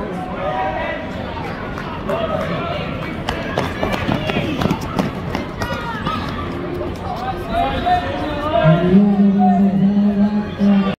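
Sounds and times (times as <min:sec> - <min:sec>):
spectators chattering: 0:00.0 - 0:10.9
running footfalls slapping track: 0:03.3 - 0:07.4.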